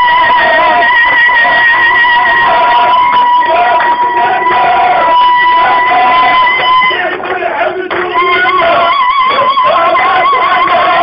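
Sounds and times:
high held tone: 0:00.0 - 0:07.1, 0:07.9 - 0:11.0
voices rising and falling: 0:00.0 - 0:11.0.

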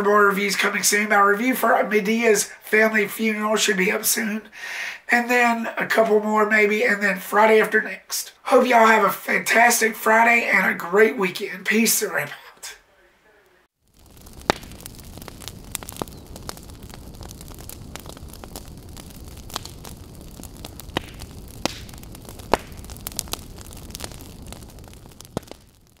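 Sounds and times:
fire crackling: 0:00.0 - 0:26.0.

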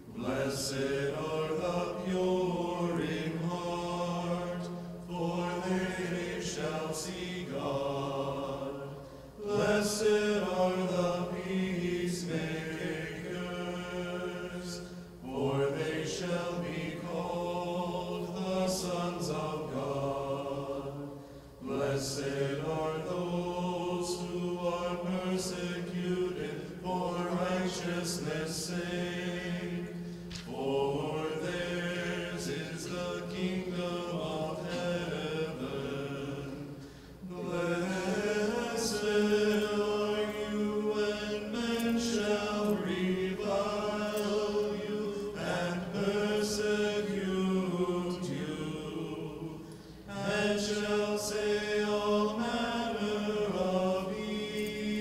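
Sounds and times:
choir chanting unaccompanied: 0:00.0 - 0:55.0.

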